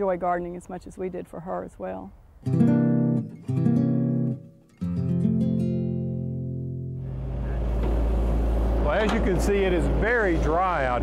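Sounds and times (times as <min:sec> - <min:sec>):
acoustic guitar chords strummed: 0:02.4 - 0:10.0
heavy machinery engine rumble: 0:07.0 - 0:11.0.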